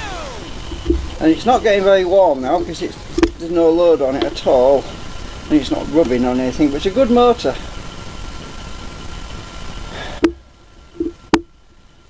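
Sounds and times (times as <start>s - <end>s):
small motor whirring: 0.0s - 11.3s.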